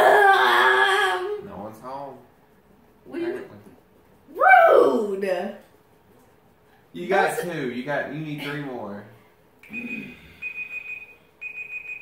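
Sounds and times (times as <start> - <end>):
electronic timer alarm beeping: 9.6 - 12.0.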